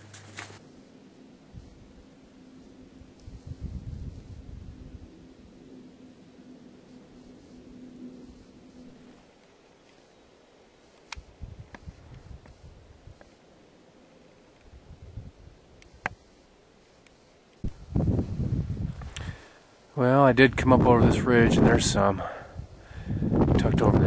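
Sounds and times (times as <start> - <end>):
faint sharp clicks: 11.0 - 12.6
microphone handling noise: 17.6 - 19.4, 23.3 - 24.0.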